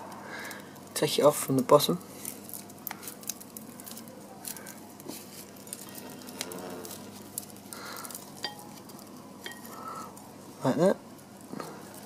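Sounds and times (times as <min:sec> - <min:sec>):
dry seed head crackling: 0:00.0 - 0:12.0.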